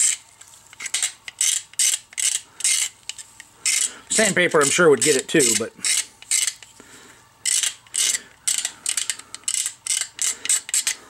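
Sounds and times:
knife blade scraping plastic: 0.0s - 6.8s, 7.4s - 11.0s.

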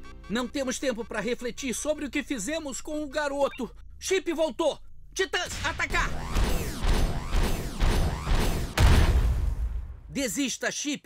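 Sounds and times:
heavy low impact: 5.5s - 10.1s.

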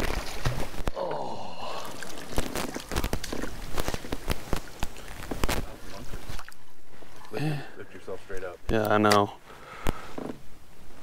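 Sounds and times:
fish splashing in net: 0.0s - 6.6s.

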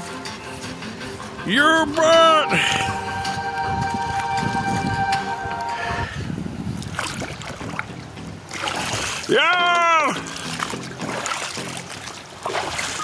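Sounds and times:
held musical chord: 0.0s - 6.4s
water sloshing and splashing: 6.6s - 13.0s.

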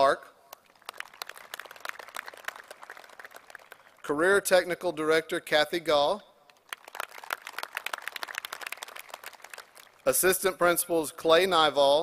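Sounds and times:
light applause: 0.5s - 4.2s, 6.5s - 10.3s.

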